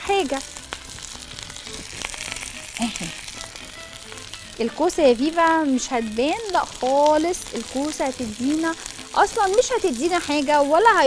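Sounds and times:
patties sizzling in oil: 0.0s - 11.0s.

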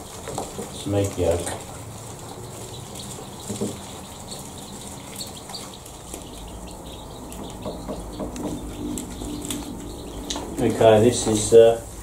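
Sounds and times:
chicks cheeping: 0.0s - 12.0s
chicks pecking: 0.0s - 12.0s.

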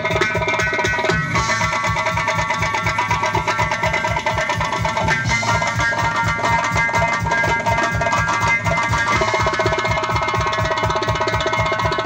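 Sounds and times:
band playing held melody: 0.0s - 12.0s
frame drums fast rhythm: 0.0s - 12.0s.

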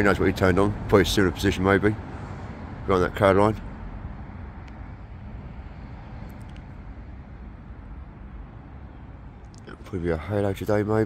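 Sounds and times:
low outdoor rumble: 0.0s - 11.0s
faint clicks: 6.2s - 6.8s.

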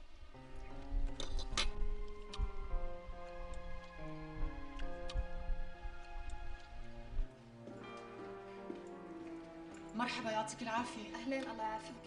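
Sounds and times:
soft low pulses: 0.0s - 7.7s
dramatic music held notes: 0.4s - 12.0s.

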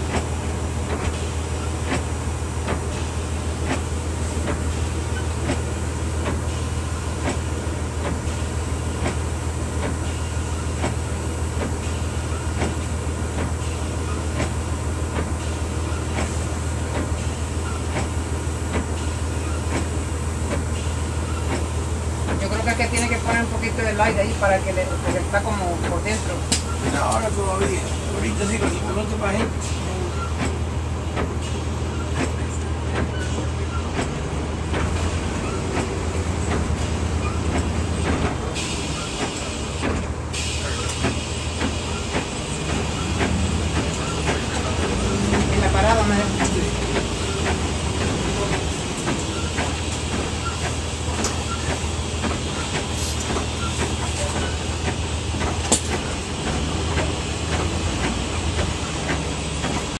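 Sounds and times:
bus engine drone: 0.0s - 60.0s
rattles and clicks of bus body: 0.0s - 60.0s.

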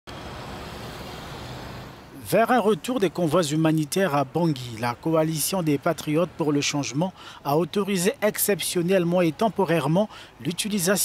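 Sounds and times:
street traffic hiss: 0.1s - 11.0s.

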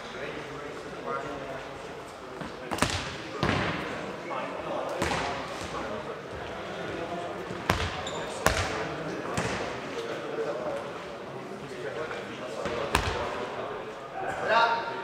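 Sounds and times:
players' voices: 0.0s - 15.0s.

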